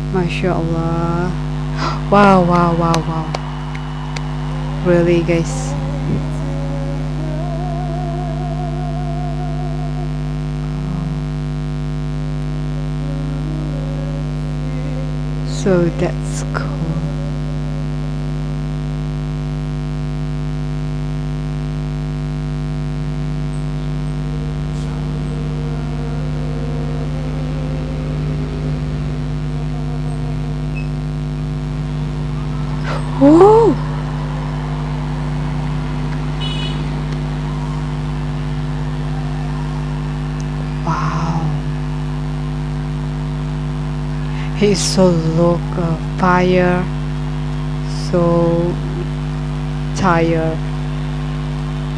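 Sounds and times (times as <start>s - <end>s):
electrical mains hum: 0.0s - 51.9s
short rising vocal sound: 5.7s - 11.8s, 12.6s - 15.6s, 24.0s - 43.2s.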